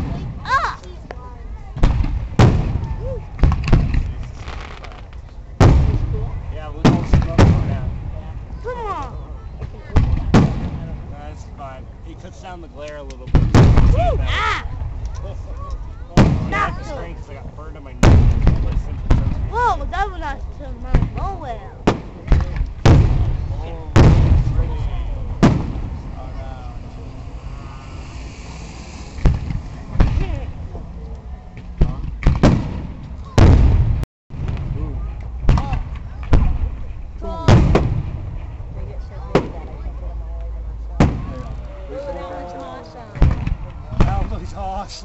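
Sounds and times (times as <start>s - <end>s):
fireworks bursting: 1.7s - 8.2s, 9.7s - 11.1s, 13.2s - 17.3s, 18.0s - 39.8s.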